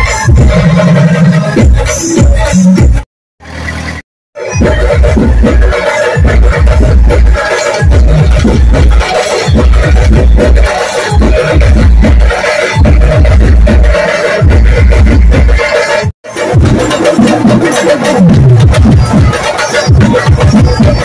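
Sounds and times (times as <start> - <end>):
dance music with heavy bass beat: 0.0 - 3.0, 4.4 - 21.0.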